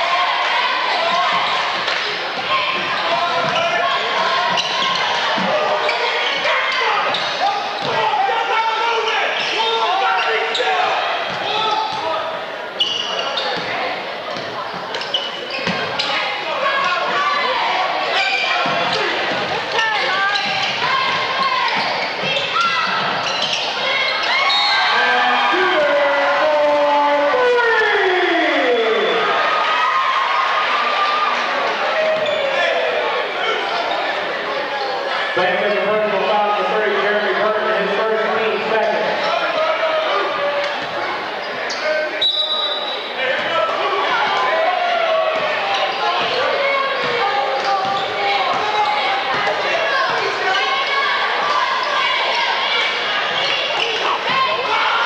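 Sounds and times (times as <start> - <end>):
spectators shouting and chatter: 0.0 - 55.0.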